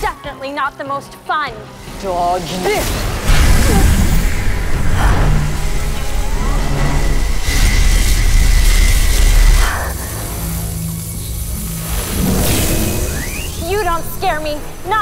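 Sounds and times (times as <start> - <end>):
dramatic action music: 0.0 - 15.0
deep rumbling energy beams: 2.8 - 15.0.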